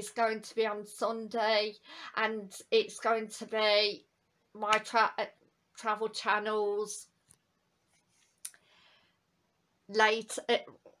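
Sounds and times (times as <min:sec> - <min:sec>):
faint soft hiss: 0:00.0 - 0:11.0.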